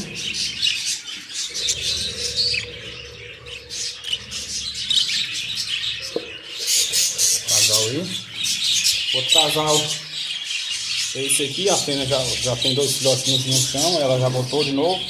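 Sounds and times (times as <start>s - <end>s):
budgerigars chattering and chirping: 0.0s - 15.0s.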